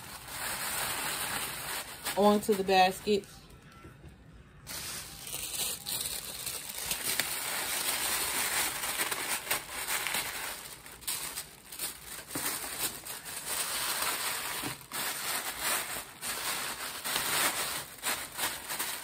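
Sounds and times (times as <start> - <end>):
plastic bags crinkling: 0.0 - 3.7, 4.7 - 19.0.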